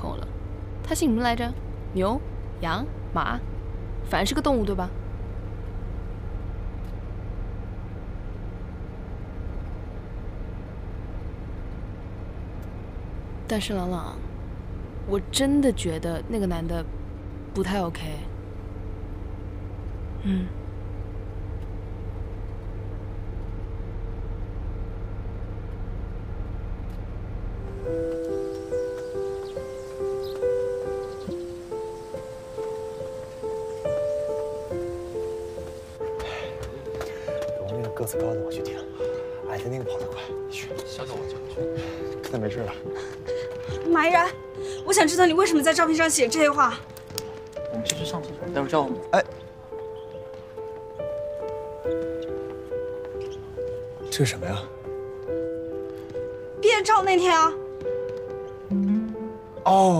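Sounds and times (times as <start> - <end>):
bus engine and road noise: 0.0 - 59.9
light background music: 0.0 - 59.9.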